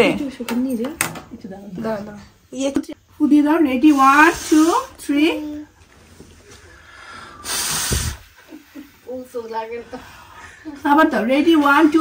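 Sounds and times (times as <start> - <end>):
puff of breath on microphone: 6.7 - 8.4.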